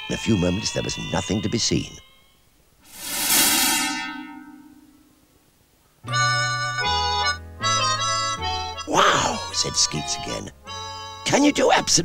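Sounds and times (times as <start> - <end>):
shimmering magic sound effect: 2.9 - 5.1.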